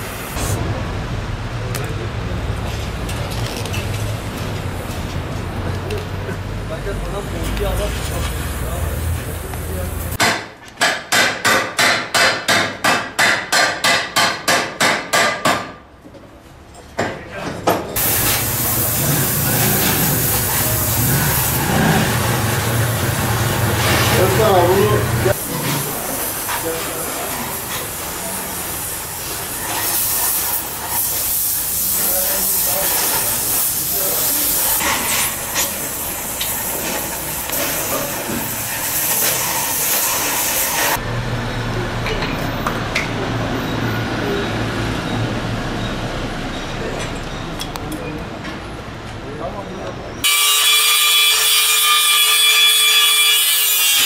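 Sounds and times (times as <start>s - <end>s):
gas cutting torch hissing: 18.0s - 41.0s.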